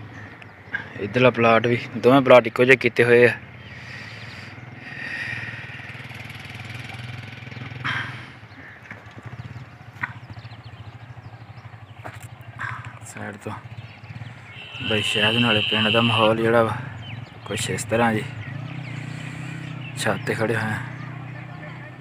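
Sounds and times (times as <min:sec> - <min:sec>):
motorcycle engine running: 0:03.1 - 0:22.0.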